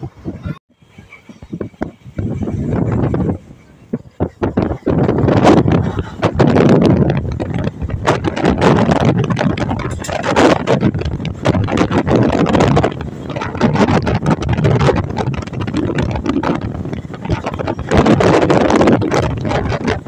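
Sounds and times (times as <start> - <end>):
train running noise: 0.0 - 20.0
wind buffeting microphone: 0.0 - 20.0.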